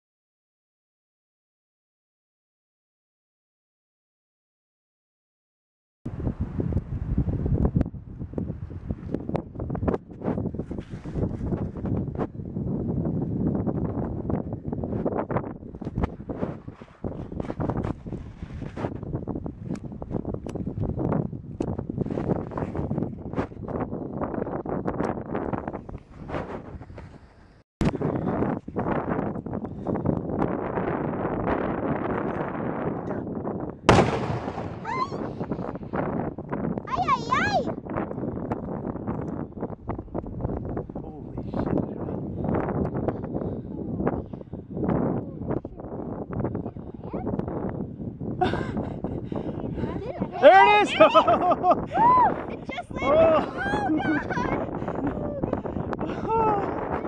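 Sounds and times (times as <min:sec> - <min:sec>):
wind buffeting microphone: 0:06.1 - 0:57.0
loud mortar boom: 0:33.9 - 0:35.7.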